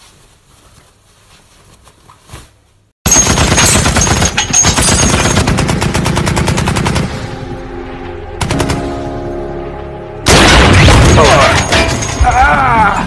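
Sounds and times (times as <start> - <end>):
rapid automatic gunfire: 3.1 - 7.1.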